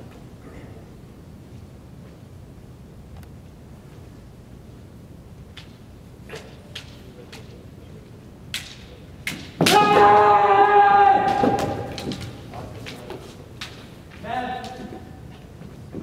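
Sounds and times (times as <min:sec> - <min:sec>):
bamboo swords clacking: 0:08.5 - 0:10.1, 0:11.2 - 0:14.9
person shouting: 0:09.7 - 0:12.1.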